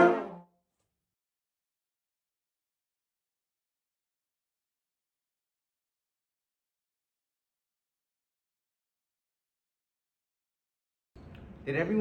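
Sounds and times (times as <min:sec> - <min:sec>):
concert band holding chord: 0:00.0 - 0:00.4.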